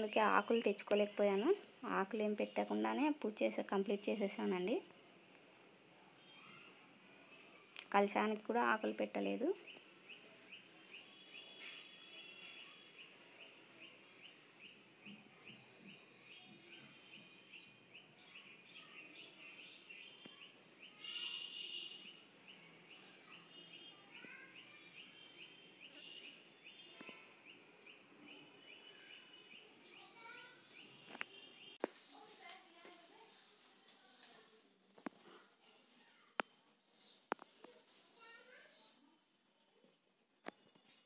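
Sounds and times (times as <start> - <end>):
faint bird chirping: 6.1 - 41.0.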